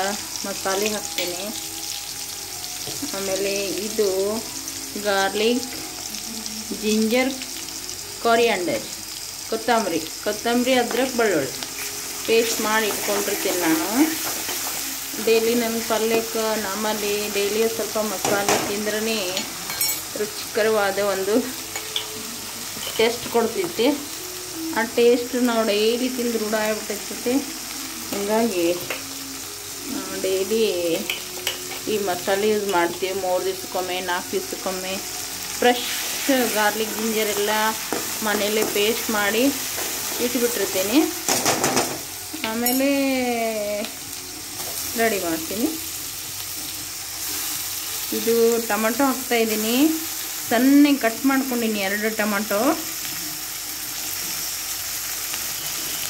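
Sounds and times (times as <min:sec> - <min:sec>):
onions sizzling in hot oil: 0:00.0 - 0:56.0.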